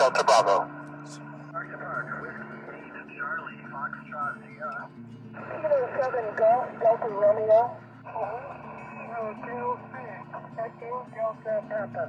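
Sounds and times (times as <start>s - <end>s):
voices over radio speaker: 0.0s - 12.0s.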